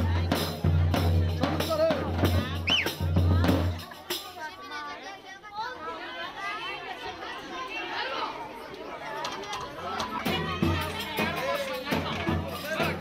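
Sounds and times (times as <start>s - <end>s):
loud band music: 0.0s - 4.0s
overlapping chatter: 0.0s - 13.0s.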